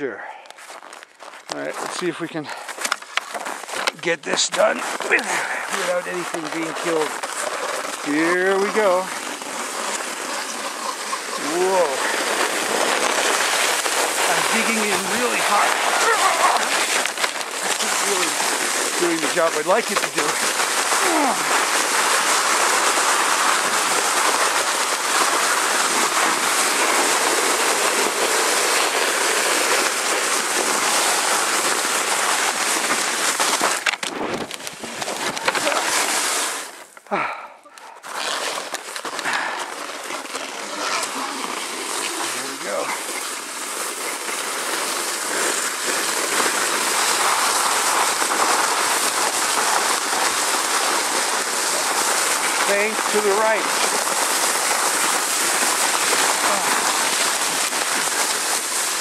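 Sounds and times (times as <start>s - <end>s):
sled runners scraping over snow: 0.4s - 59.0s.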